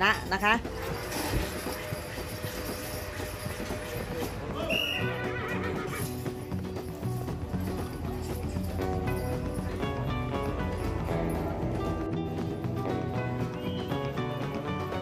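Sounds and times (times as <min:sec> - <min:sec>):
background music with beat: 0:00.0 - 0:15.0
crowd noise: 0:00.0 - 0:15.0
hoofbeats on dirt: 0:00.0 - 0:15.0.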